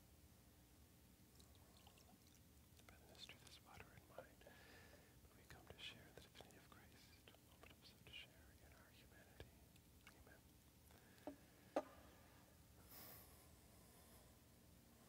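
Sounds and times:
faint whispered prayer: 0:02.8 - 0:11.2.

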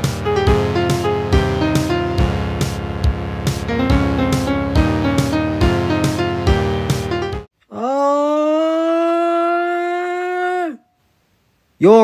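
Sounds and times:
cartoon character yelling: 0:07.7 - 0:10.8.

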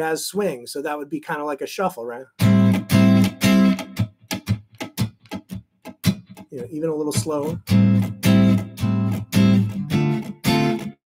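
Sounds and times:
damped electric guitar strumming: 0:02.4 - 0:11.0.

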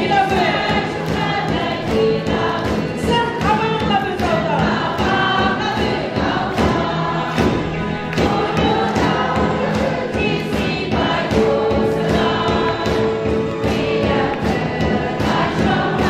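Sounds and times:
congregation singing: 0:00.0 - 0:16.0
steady beat: 0:00.0 - 0:16.0.

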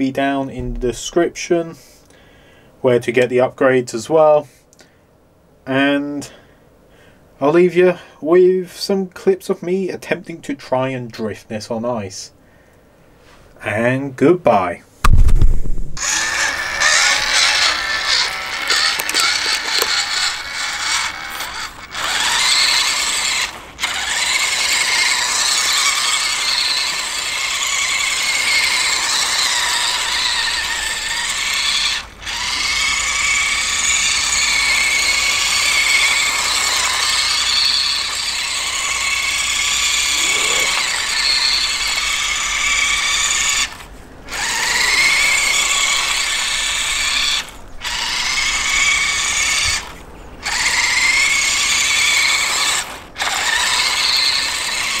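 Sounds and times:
small electric motor whining: 0:16.0 - 0:55.0.

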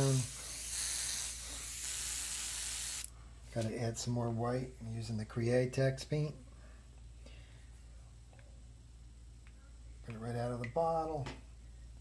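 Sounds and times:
airbrush air hiss: 0:00.0 - 0:03.1.

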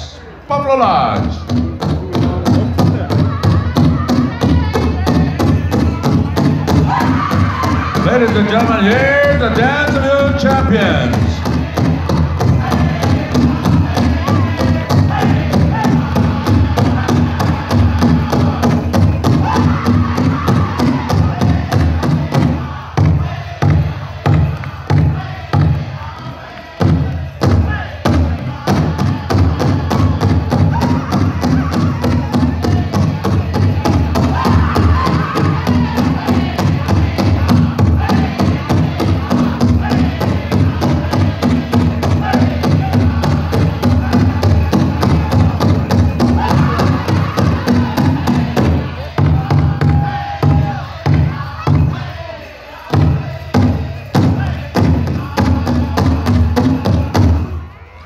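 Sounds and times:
fast steady drumbeat: 0:00.8 - 0:57.6
hard drum strikes: 0:01.2 - 0:25.9, 0:26.8 - 0:52.0
group singing: 0:02.8 - 0:58.0.

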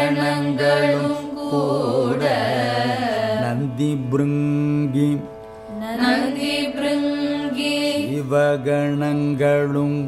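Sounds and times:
man singing: 0:03.0 - 0:05.4, 0:08.0 - 0:10.0.

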